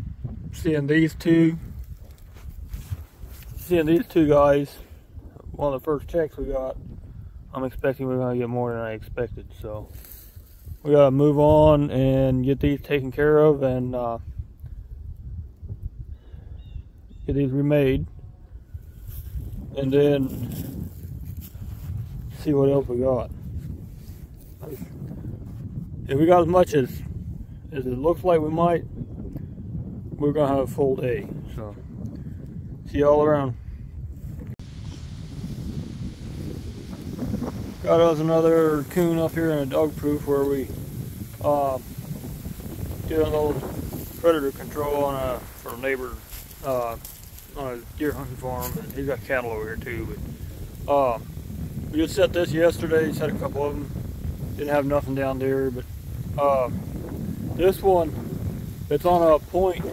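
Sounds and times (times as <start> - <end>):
wind rumble on microphone: 0.0 - 59.9
footsteps through dry grass and leaves: 1.6 - 3.6, 9.9 - 10.9, 18.8 - 22.4, 34.6 - 59.9.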